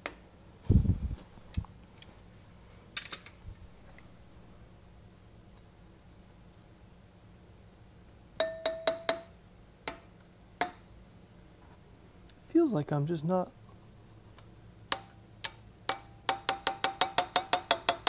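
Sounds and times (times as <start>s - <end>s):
hammer tapping metal punch: 8.4s - 10.9s, 14.9s - 18.0s.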